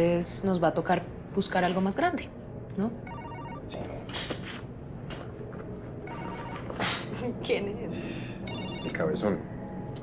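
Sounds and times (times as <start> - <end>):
telephone ringing: 3.1 - 3.8, 6.0 - 6.8, 8.5 - 9.1.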